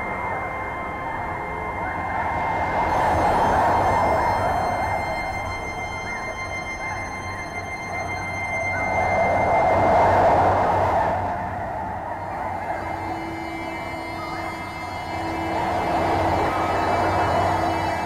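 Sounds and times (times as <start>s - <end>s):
rushing noise drone: 0.0s - 18.0s.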